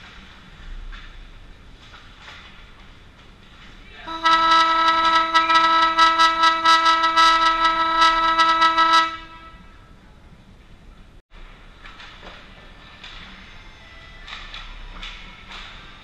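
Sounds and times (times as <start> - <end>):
ice rink horn blaring: 4.1 - 9.9.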